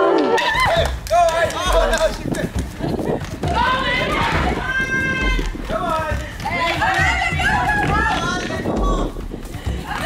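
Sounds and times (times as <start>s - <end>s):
people shouting and cheering: 0.0s - 10.0s
low rumble: 0.6s - 10.0s
scattered knocks: 0.8s - 10.0s.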